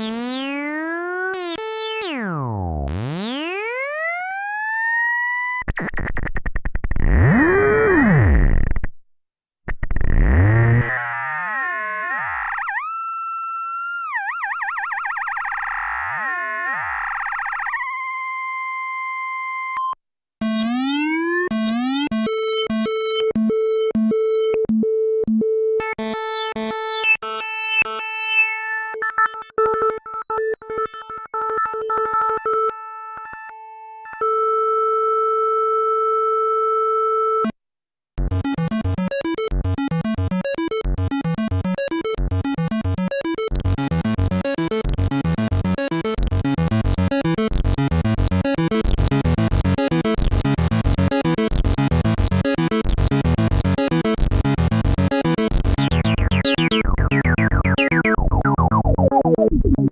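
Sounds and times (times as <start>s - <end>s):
synthesizer playing notes: 38.2s - 59.9s
synthesizer tone sweeping: 55.0s - 59.9s.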